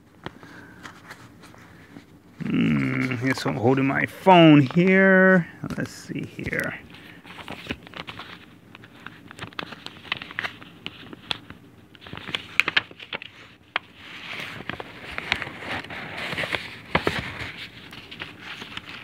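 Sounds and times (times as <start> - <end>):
fingers rubbing paper envelope: 7.3 - 19.0.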